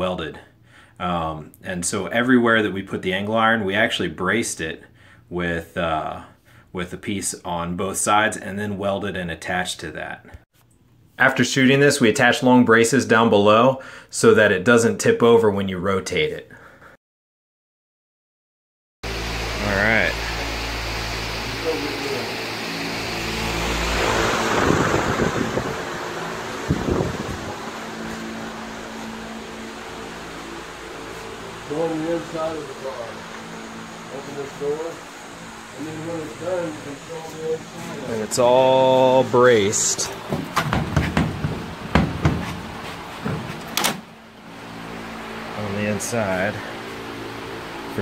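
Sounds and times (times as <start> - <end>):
steady mechanical hum: 19.1 - 48.0
phone rustling and knocking: 40.2 - 43.7
door latch metal clicks: 43.6 - 44.0.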